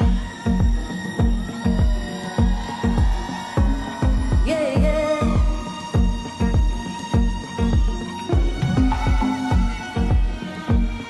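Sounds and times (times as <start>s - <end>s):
slow hip-hop beat: 0.0s - 11.0s
booming bass-drum hits: 7.8s - 10.8s.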